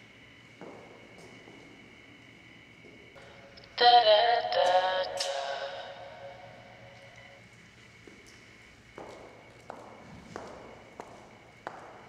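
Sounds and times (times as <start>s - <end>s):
heel footsteps on concrete: 0.5s - 1.8s, 8.0s - 12.0s.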